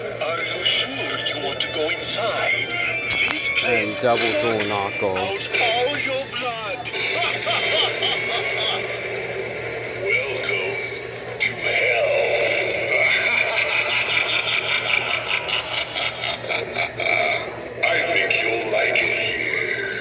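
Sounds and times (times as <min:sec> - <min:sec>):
recorded voice through small speaker: 0:00.0 - 0:07.6, 0:16.8 - 0:20.0
low electrical hum: 0:00.0 - 0:20.0.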